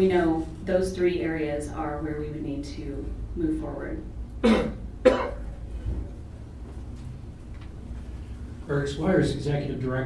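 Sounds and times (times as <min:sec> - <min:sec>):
person coughing: 0:04.4 - 0:05.5.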